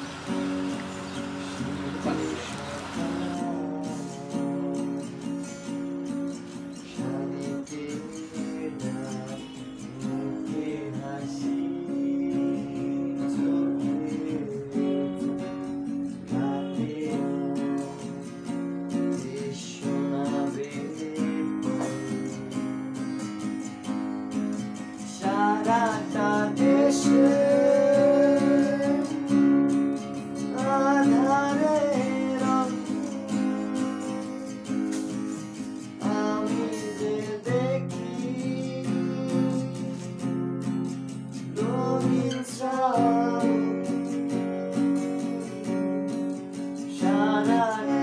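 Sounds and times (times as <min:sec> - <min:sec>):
acoustic guitar strumming chords: 0:00.0 - 0:48.0
person singing: 0:00.0 - 0:48.0.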